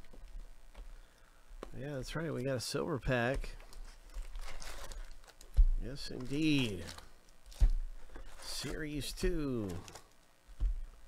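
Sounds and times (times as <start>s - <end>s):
foil card packs rustling: 1.6s - 10.2s.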